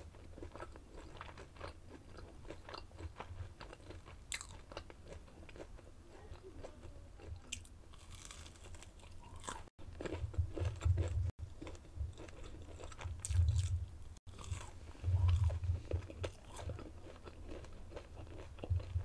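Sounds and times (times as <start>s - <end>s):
chewing crispy food: 0.0s - 19.0s.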